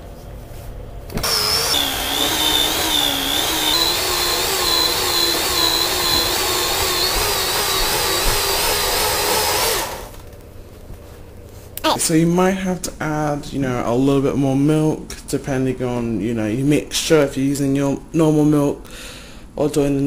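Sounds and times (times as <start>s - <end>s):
electric stand mixer whirring: 1.2s - 10.2s.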